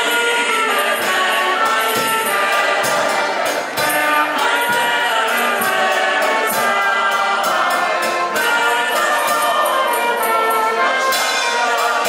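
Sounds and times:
accordion: 0.0 - 12.0
people singing: 0.0 - 12.0
trumpet: 0.0 - 12.0.

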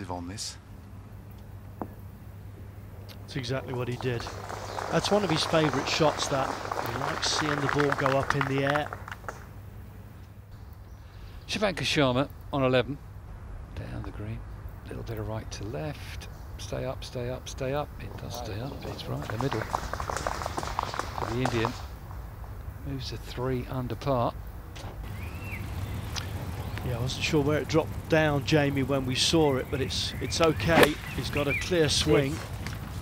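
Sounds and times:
faint low hum with hiss: 0.0 - 33.0.

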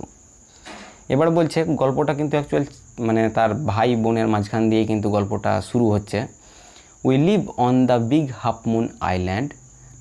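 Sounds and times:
person speaking: 0.0 - 6.4, 7.0 - 9.6.

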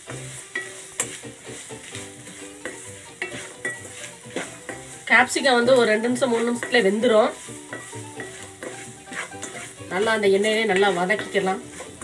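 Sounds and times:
soft background music: 0.0 - 12.0
vegetables sizzling: 0.0 - 12.0
wooden spatula scraping a pan: 0.0 - 12.0.

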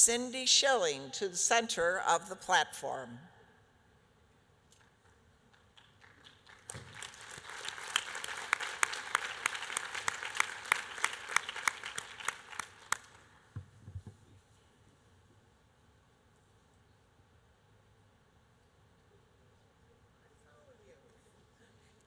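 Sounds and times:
audience applauding: 5.6 - 13.3.

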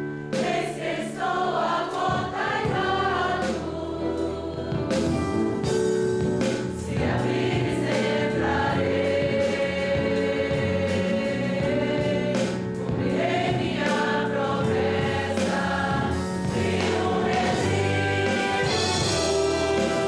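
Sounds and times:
instrumental accompaniment: 0.0 - 20.0
group singing a hymn: 0.3 - 5.1, 6.8 - 20.0.

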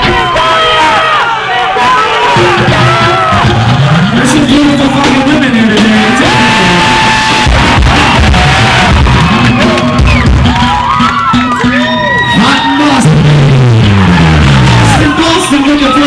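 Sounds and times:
crowd shouting and whooping: 0.0 - 16.0
rock band playing loose notes: 0.0 - 16.0.

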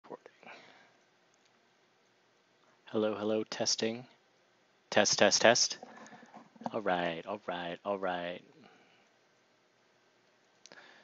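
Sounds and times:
faint clicks: 1.0 - 2.2.

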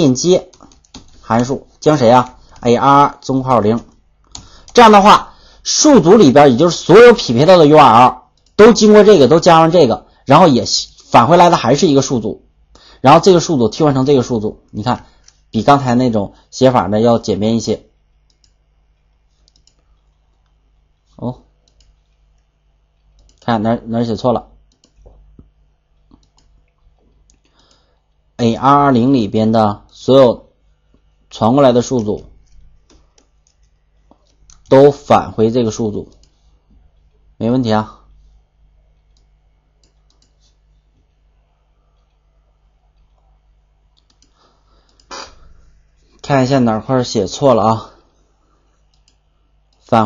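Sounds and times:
steady low hum: 0.0 - 50.0
computer mouse clicks: 0.4 - 1.6, 2.2 - 4.9, 8.3 - 8.6, 14.6 - 15.5, 18.1 - 23.5, 24.7 - 28.2, 31.8 - 34.8, 36.0 - 37.2, 38.9 - 41.2, 43.9 - 45.5, 48.8 - 49.9.

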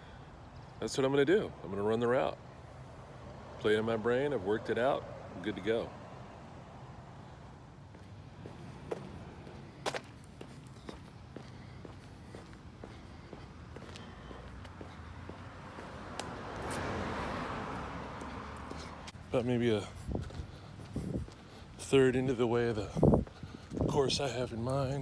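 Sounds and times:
running footsteps on asphalt: 7.9 - 24.2.

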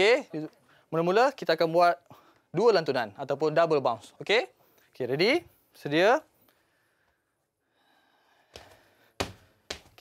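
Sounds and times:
sneakers landing on wooden floor: 8.6 - 10.0.

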